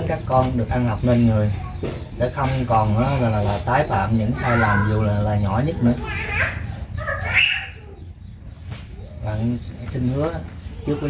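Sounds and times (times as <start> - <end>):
high-pitched wavering cry: 5.8 - 8.1.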